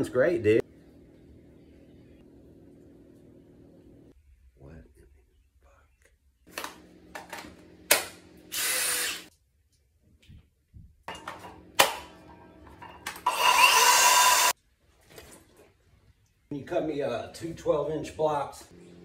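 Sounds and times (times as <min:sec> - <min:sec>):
power tool motor whining: 0:08.5 - 0:09.3, 0:13.2 - 0:14.5.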